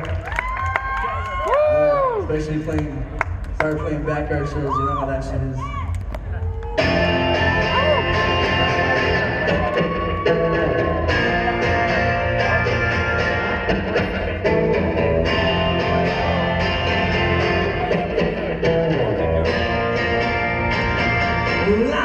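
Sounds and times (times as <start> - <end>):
amplified electric guitar: 5.6 - 22.0.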